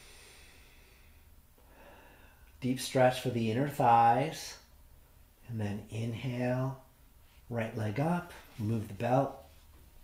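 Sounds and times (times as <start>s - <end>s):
man breathing faintly: 0.0s - 2.6s.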